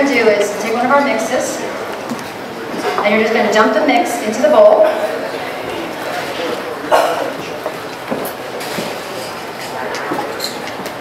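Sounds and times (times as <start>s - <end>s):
murmur of large hall: 0.0s - 11.0s.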